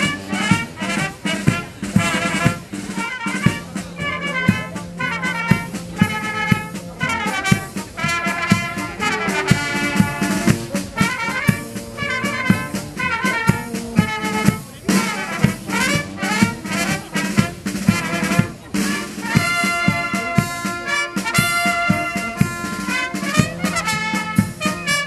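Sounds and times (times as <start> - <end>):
bass drum beat: 0.0 - 25.0
brass band playing: 0.0 - 25.0.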